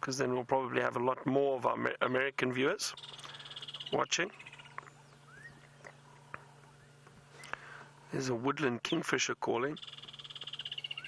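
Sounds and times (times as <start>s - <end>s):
low steady hum: 0.0s - 11.0s
distant bird chirps: 2.2s - 11.0s.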